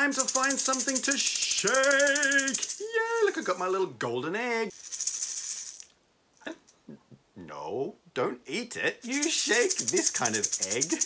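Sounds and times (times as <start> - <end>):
egg shaker rattling: 0.0 - 3.9, 4.6 - 6.0, 9.0 - 11.0.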